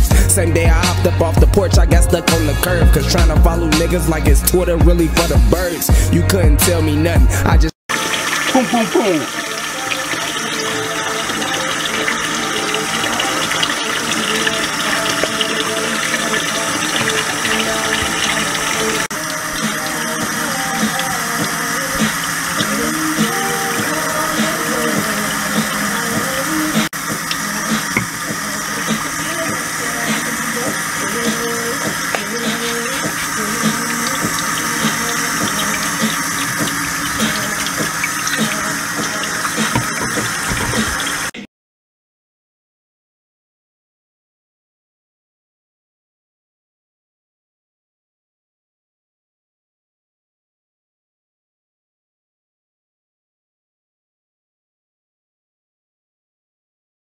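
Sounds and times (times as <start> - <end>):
background music: 0.0 - 41.3
tap water running onto hair: 7.9 - 41.3.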